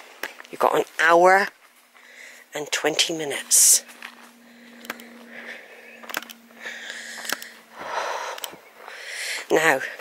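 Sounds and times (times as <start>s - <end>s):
footsteps on grass: 0.0s - 10.0s
faint steady hum: 1.5s - 10.0s
person breathing: 1.9s - 2.5s, 4.2s - 10.0s
sharp clicks: 4.6s - 5.2s, 5.9s - 7.6s, 8.2s - 8.7s.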